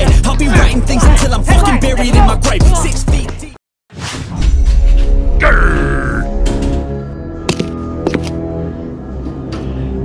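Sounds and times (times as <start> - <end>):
background music with heavy bass: 0.0 - 3.5.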